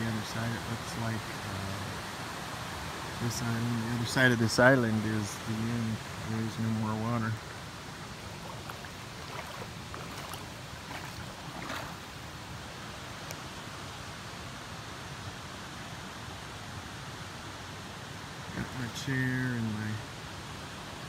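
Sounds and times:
creek water running over rocks: 0.0s - 21.0s.

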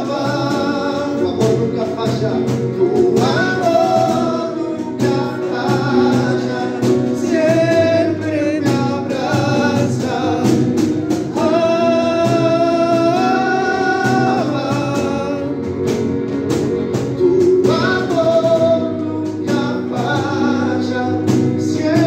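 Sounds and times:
man singing worship song: 0.0s - 16.2s, 16.9s - 22.0s
electronic keyboard: 0.0s - 22.0s.

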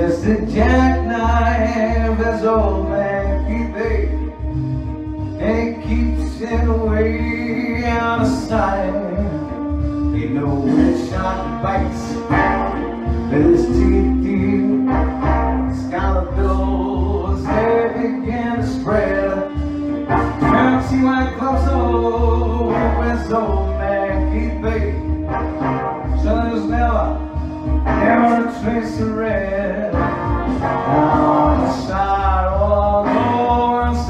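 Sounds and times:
man singing into microphone: 0.0s - 4.3s, 5.4s - 27.3s, 27.9s - 34.0s
instrumental backing track: 0.0s - 34.0s.

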